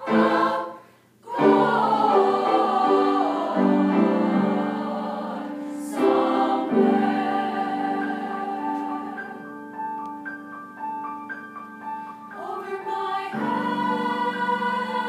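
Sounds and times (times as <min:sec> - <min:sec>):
girls' choir singing: 0:00.0 - 0:09.7, 0:12.3 - 0:15.0.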